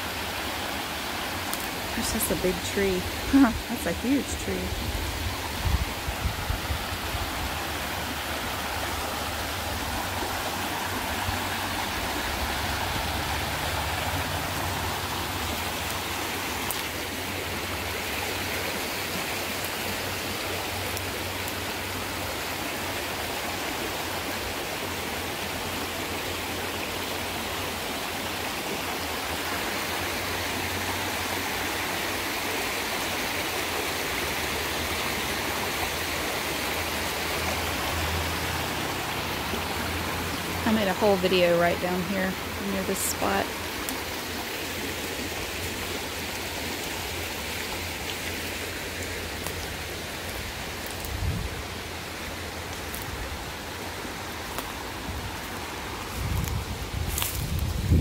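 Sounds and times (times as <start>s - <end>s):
creek flowing over stones: 0.0s - 58.0s.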